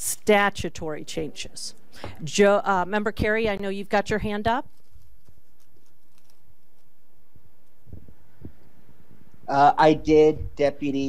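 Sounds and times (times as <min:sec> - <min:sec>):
meeting room background noise: 0:00.0 - 0:11.0.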